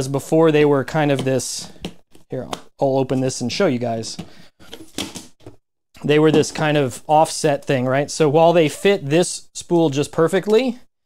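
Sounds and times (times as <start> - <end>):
plastic knocking and scraping: 4.1 - 5.6.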